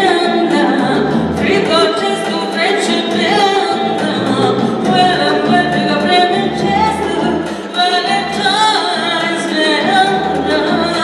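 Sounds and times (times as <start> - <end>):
woman singing into microphone: 0.0 - 11.0.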